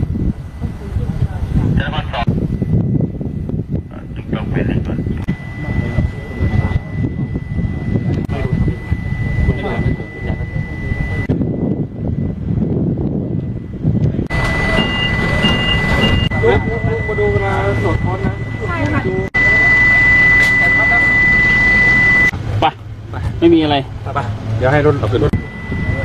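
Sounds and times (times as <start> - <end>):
low steady hum: 0.0 - 26.0
voices talking: 0.4 - 12.4, 13.3 - 26.0
high-pitched electronic tone: 1.8 - 22.8, 24.6 - 26.0
short high beeps: 4.8 - 11.4, 14.3 - 22.4, 25.2 - 26.0.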